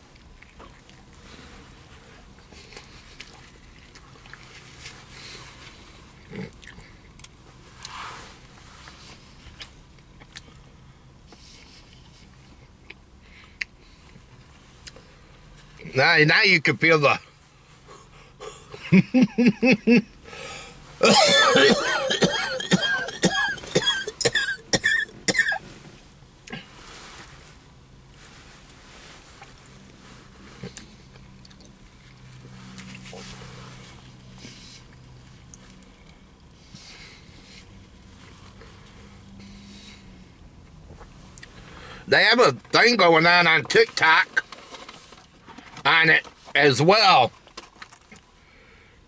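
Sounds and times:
chewing and mouth smacks: 0.1s - 1.1s, 2.4s - 5.0s, 6.2s - 7.9s, 9.5s - 10.7s, 30.6s - 31.8s
man coughing: 21.0s - 25.6s.

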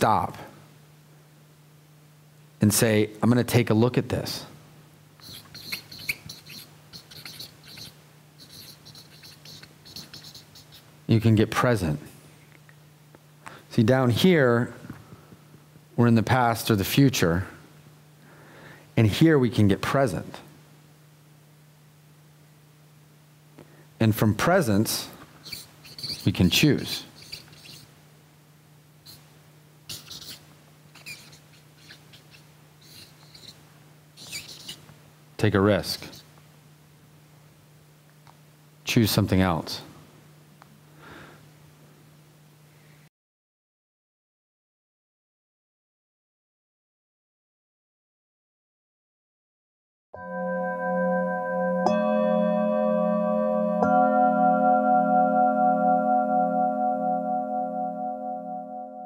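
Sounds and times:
marker squeaking on paper: 5.2s - 10.9s, 25.4s - 27.9s, 29.1s - 29.3s, 29.9s - 33.6s, 34.2s - 34.8s, 36.0s - 36.3s.

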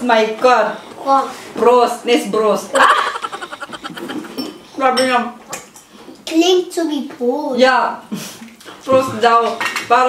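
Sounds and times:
person talking: 2.8s - 4.4s.

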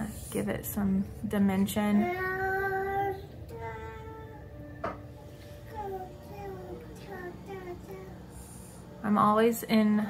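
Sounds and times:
child singing faintly: 2.0s - 4.9s, 5.6s - 8.8s.

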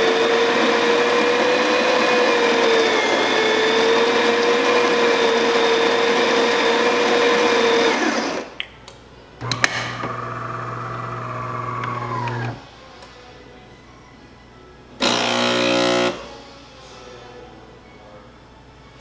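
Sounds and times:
coffee grinder grinding beans: 0.0s - 8.5s, 9.4s - 12.6s
espresso pump humming: 9.4s - 12.6s.

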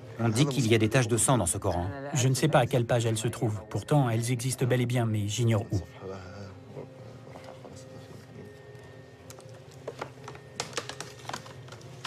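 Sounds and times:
parchment pages crackling: 9.2s - 12.0s.

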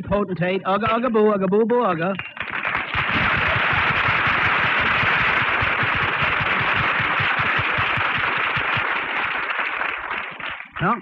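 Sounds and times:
studio audience applauding: 2.2s - 11.0s.

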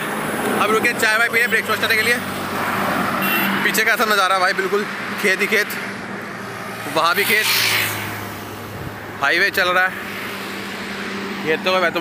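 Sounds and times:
vehicle passing by: 1.8s - 12.0s.

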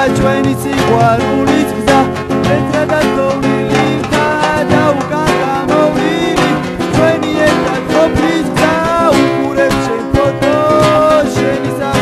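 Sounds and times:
plucked guitar song: 0.0s - 12.0s.

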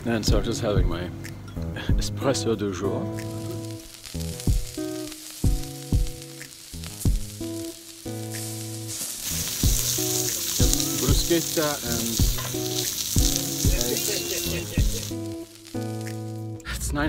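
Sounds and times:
music with held notes: 0.0s - 17.0s
kick drum: 0.3s - 1.0s, 1.9s - 2.2s, 4.5s - 4.7s
meat sizzling on a grill: 3.0s - 16.6s.

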